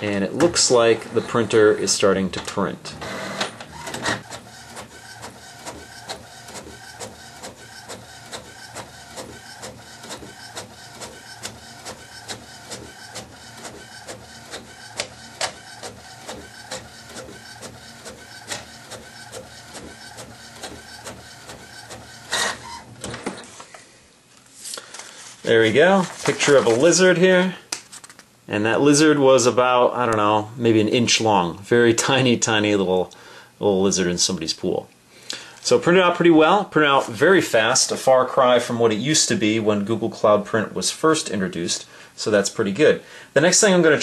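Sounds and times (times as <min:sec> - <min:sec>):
printer carriage shuttling: 0:03.0 - 0:23.5
printer page feeding out: 0:03.0 - 0:23.6, 0:25.9 - 0:27.1.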